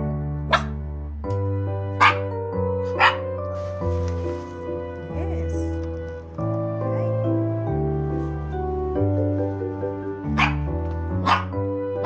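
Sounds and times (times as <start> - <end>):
background music: 0.0 - 12.0
puppy yapping: 0.5 - 0.8, 2.0 - 2.3, 3.0 - 3.2, 10.4 - 11.5.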